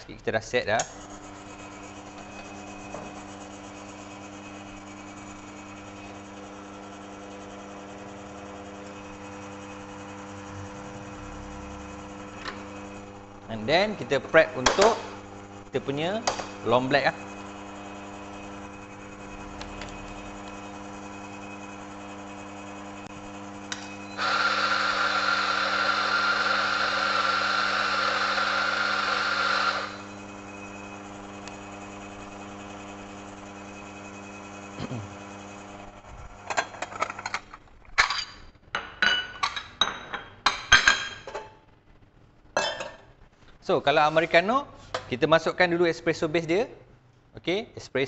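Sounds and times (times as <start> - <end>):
espresso machine humming: 0.9 - 37.3
coffee grinder: 1.0 - 37.3.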